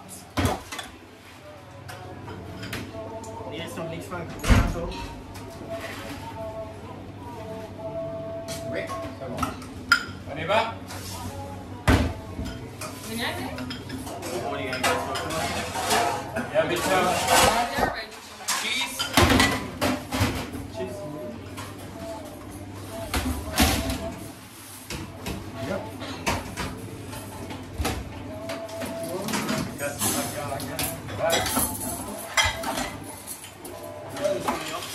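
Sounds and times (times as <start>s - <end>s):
plates and utensils clinking: 12.4s - 20.6s, 21.4s - 34.9s.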